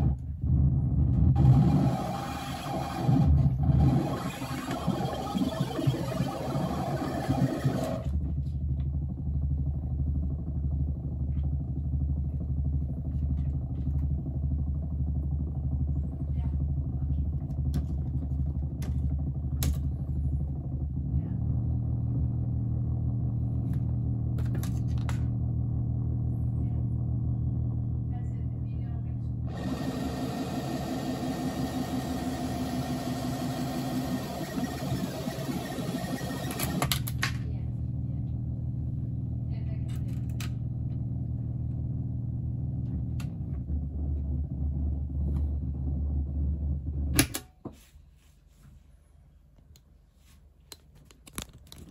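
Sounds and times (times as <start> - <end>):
synthesizer noise drone: 0.0 - 39.6, 40.4 - 47.2.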